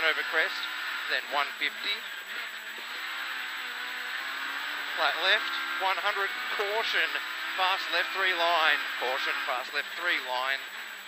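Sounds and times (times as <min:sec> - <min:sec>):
rally car engine at high revs: 0:00.0 - 0:11.0.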